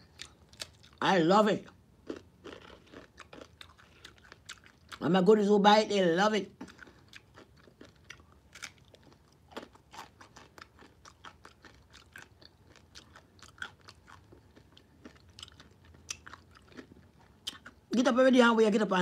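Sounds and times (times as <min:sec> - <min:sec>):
chip crunching: 0:02.0 - 0:05.1, 0:06.6 - 0:17.9.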